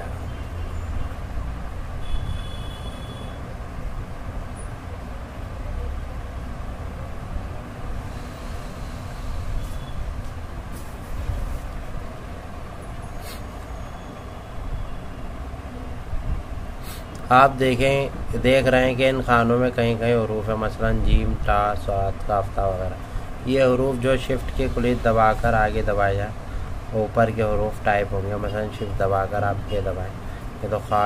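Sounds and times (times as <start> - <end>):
low rumbling background noise: 0.0 - 31.0.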